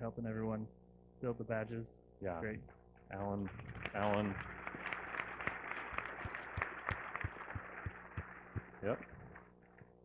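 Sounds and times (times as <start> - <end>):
audience applauding lightly: 3.1 - 9.9.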